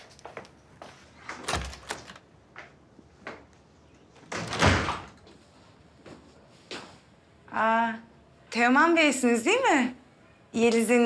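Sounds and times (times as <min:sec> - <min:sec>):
door closing with heavy thud: 0:04.2 - 0:05.2.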